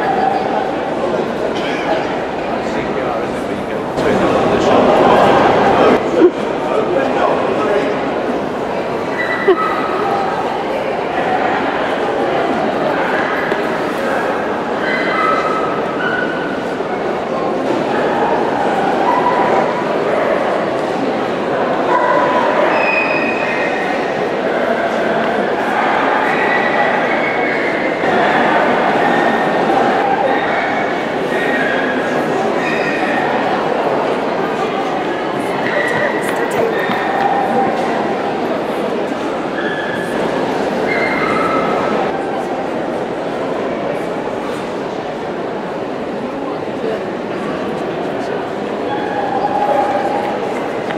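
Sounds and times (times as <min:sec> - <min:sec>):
crowd chatter: 0:00.0 - 0:50.9.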